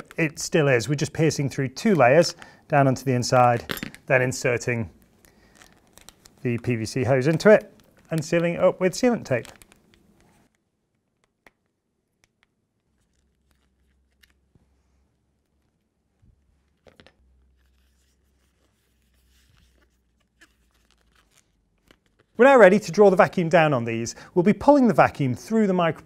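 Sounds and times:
plastic film crinkling: 4.9 - 10.6, 12.2 - 14.5, 16.7 - 22.4.

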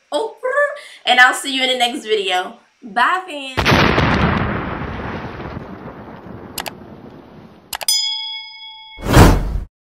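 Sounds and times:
notification bell ding: 7.9 - 9.1
explosion sound effect: 9.0 - 9.7.

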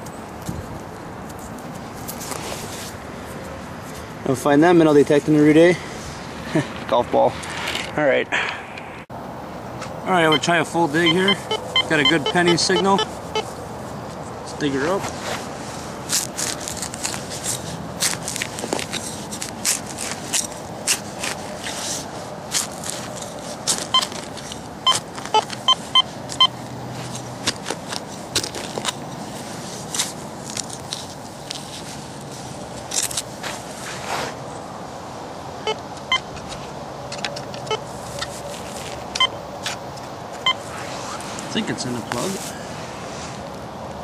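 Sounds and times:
steady background noise: 0.0 - 44.0
metal detector beeps: 10.2 - 13.5, 23.9 - 24.1, 24.8 - 26.6, 37.6 - 37.8, 39.2 - 39.4
hand digger cutting turf: 10.4 - 13.4, 14.7 - 31.9
roots snapping: 16.0 - 25.7, 27.0 - 31.7.

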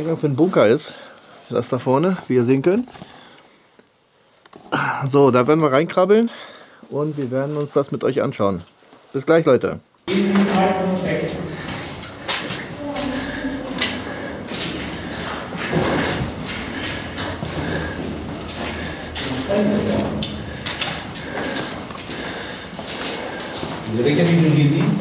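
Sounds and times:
footsteps crunching on stony floor: 10.1 - 25.0.

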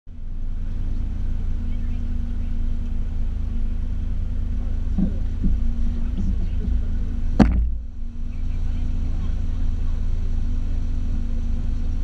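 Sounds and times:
car engine idling: 0.1 - 12.0.

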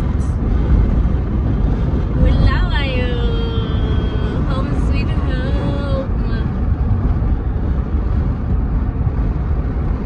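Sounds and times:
car driving on paved road: 0.0 - 10.0.

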